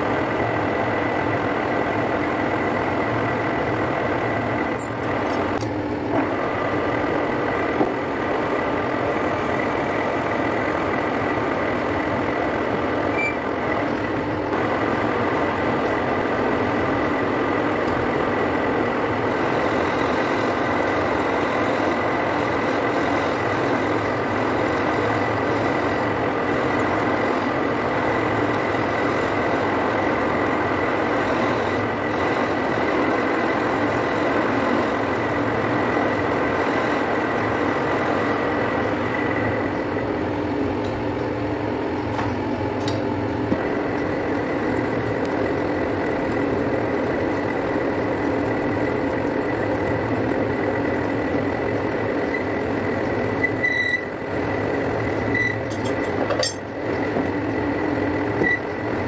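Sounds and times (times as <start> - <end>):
metal lathe running: 0.0 - 59.0.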